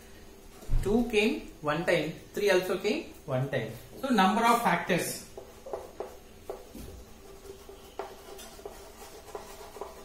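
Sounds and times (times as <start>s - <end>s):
chalk scratching on blackboard: 5.2s - 10.0s
chalk tapping on blackboard: 5.2s - 10.0s.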